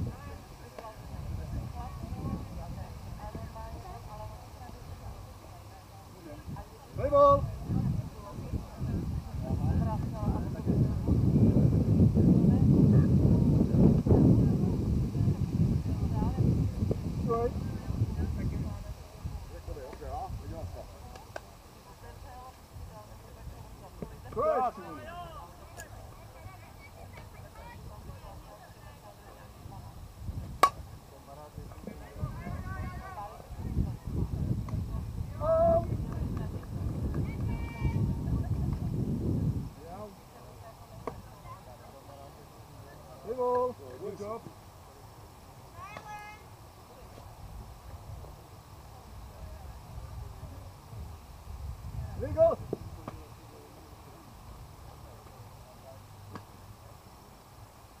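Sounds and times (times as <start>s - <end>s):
bat striking ball: 30.6s - 30.8s.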